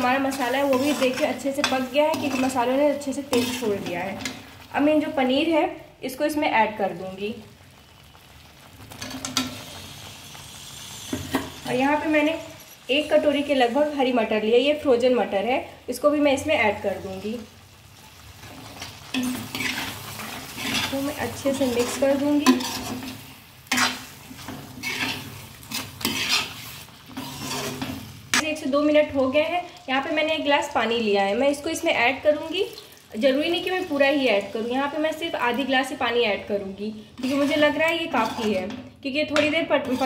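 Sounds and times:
faint sizzle from pan: 0.0s - 40.0s.

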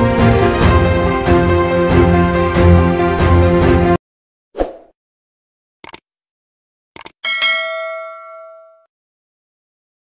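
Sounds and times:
bell ding: 7.2s - 8.9s.

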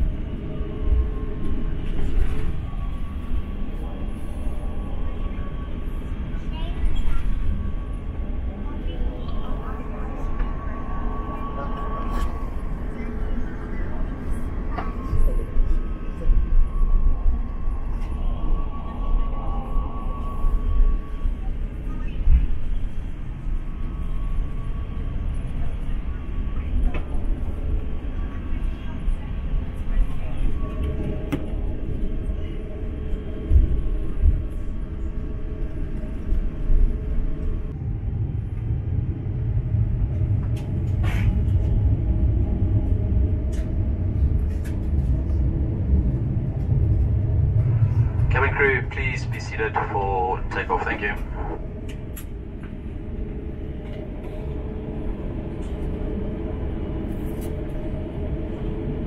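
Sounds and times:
airliner cabin rumble: 0.0s - 59.0s.

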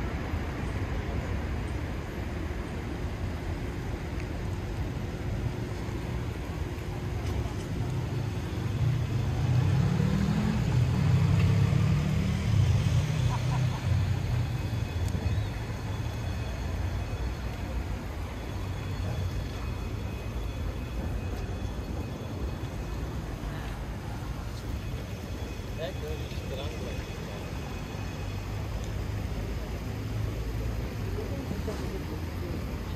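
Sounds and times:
indistinct voices of passers-by: 0.0s - 32.9s
low traffic rumble: 0.0s - 32.9s
engine passing: 4.8s - 32.9s.

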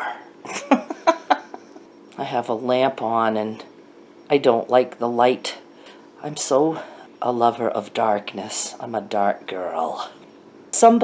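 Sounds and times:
woman laughing: 0.4s - 1.9s.

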